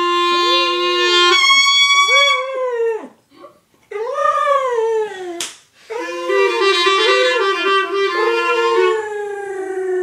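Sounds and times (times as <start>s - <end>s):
clarinet note: 0.0s - 2.5s, 5.9s - 9.1s
dog howling: 4.0s - 10.0s.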